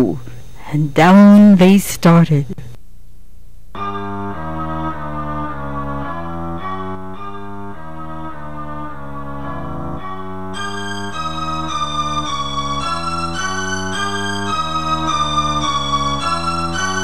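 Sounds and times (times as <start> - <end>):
melody over bass line: 3.8 - 17.0.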